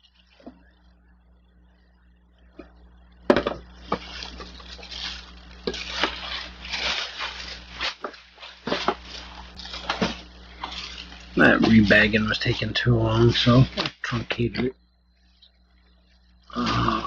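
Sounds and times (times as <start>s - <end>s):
plastic bag rustling: 3.6s - 14.1s.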